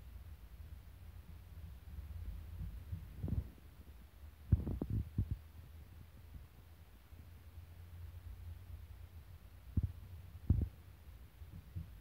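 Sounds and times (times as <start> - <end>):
dull low thumps: 9.7 - 10.8.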